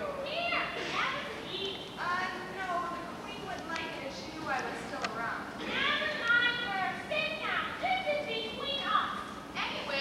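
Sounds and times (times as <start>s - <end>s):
high-pitched young voices talking: 0.0s - 10.0s.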